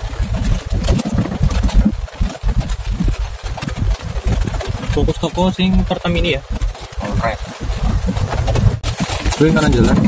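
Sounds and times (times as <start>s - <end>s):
rain hitting windshield: 0.0s - 10.0s
vehicle cab rumble: 0.0s - 10.0s.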